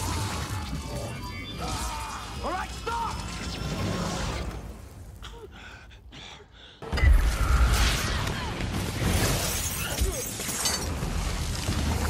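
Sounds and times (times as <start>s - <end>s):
glass shattering: 9.0s - 11.0s.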